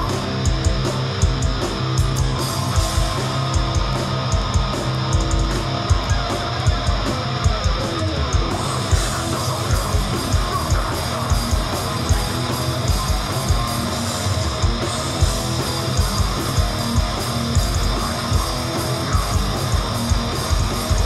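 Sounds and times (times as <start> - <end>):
punk band playing live: 0.0 - 21.0.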